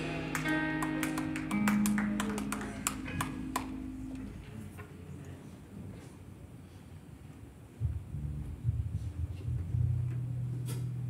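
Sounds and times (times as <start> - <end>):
band holding low chord: 0.0 - 4.8.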